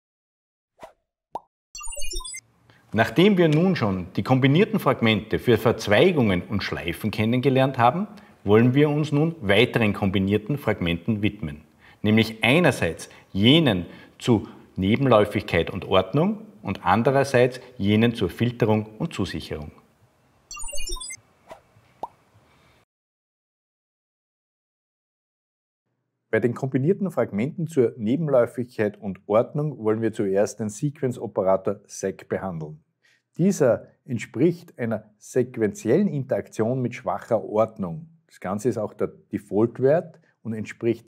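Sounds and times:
electronic blips stepping down: 0:01.8 - 0:02.4, 0:20.5 - 0:21.2.

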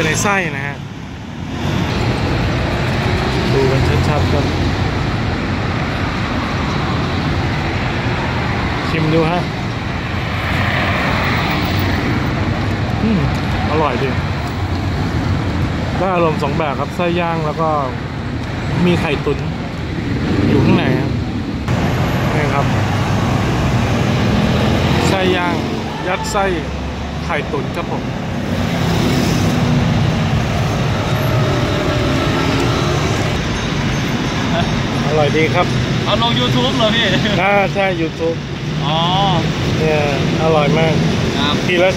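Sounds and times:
road traffic: 0:00.0 - 0:41.9.

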